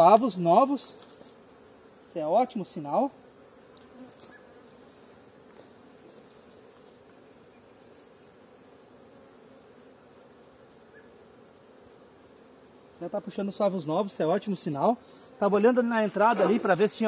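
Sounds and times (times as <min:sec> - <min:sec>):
honeybees buzzing: 0:00.0 - 0:17.0.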